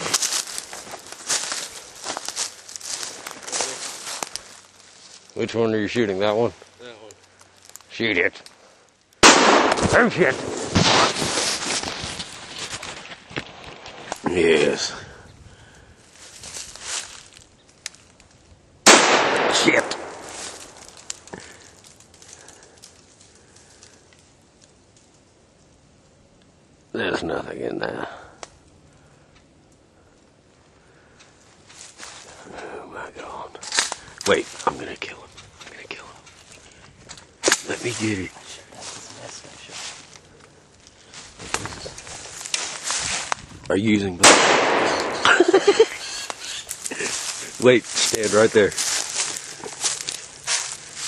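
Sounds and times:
rustling in brush: 0.0s - 5.4s, 10.2s - 14.7s, 16.1s - 17.6s, 33.9s - 43.6s, 45.0s - 51.0s
footsteps: 0.0s - 8.6s, 9.6s - 15.0s, 16.0s - 18.4s, 19.5s - 23.9s, 31.2s - 32.6s, 33.6s - 43.7s, 44.6s - 51.0s
loud gunshot: 9.2s - 11.2s, 18.9s - 20.4s, 44.2s - 45.3s.

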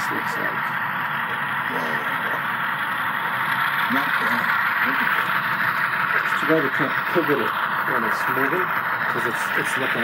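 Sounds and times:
faint voices: 0.0s - 2.8s
model train whirring: 0.0s - 10.0s.

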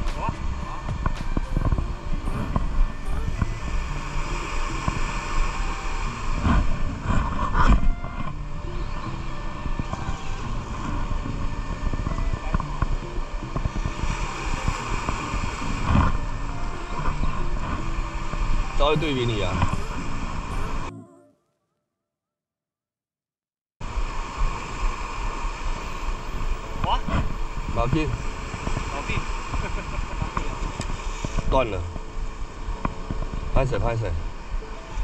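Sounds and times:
sea surf against rocks: 0.0s - 20.9s, 23.8s - 35.0s
wind on microphone: 0.0s - 20.9s, 23.8s - 35.0s.

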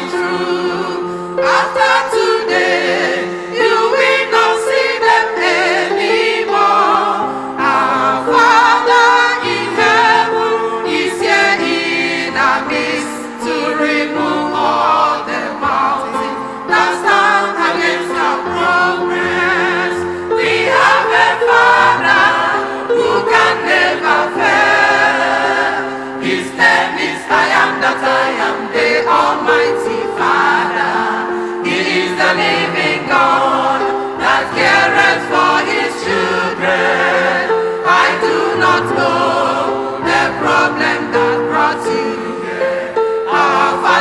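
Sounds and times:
choir singing a hymn: 0.0s - 44.0s.

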